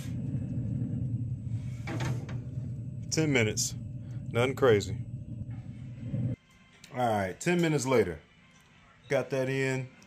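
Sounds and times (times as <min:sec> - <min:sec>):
pellet grill fan humming: 0:00.0 - 0:06.4.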